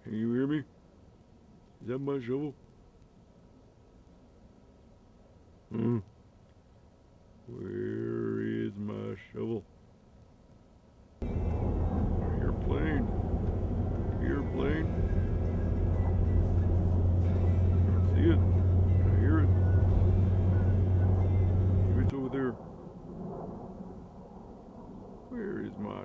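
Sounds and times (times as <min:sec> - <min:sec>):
loud low rumble: 0:11.2 - 0:23.6.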